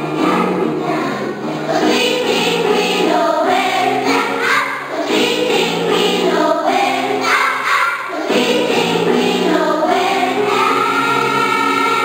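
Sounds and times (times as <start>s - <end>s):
children's choir singing: 0.0s - 12.0s.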